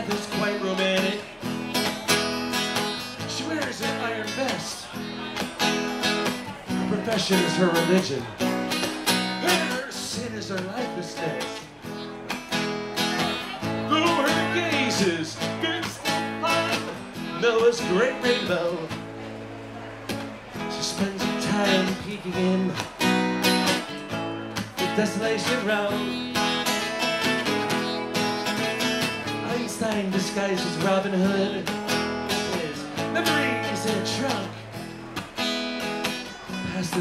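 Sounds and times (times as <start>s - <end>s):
acoustic guitars strumming chords: 0.0s - 37.0s
picked guitar lead line: 0.0s - 37.0s.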